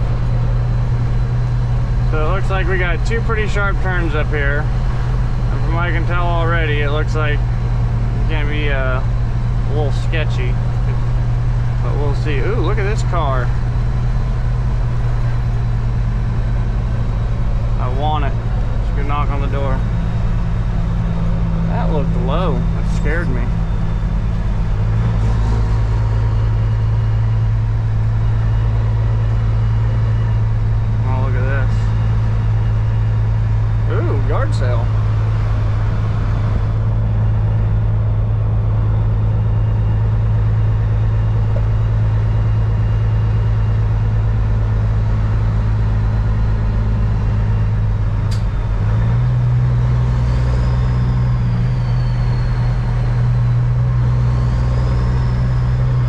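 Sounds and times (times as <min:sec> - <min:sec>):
truck diesel engine droning: 0:00.0 - 0:56.0.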